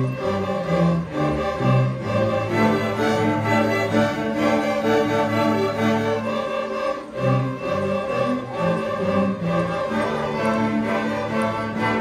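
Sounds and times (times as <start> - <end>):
string orchestra bowed notes: 0.0 - 12.0.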